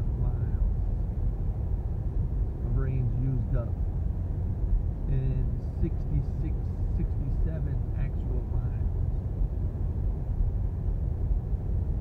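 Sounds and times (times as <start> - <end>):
road and tyre rumble in car: 0.0 - 12.0.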